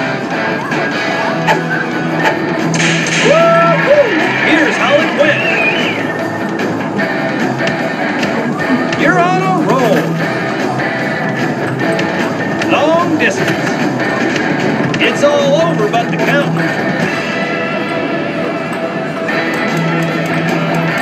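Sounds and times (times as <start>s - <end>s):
crowd voices: 0.0s - 21.0s
electronic game sounds: 0.0s - 21.0s
loud background music: 0.0s - 21.0s.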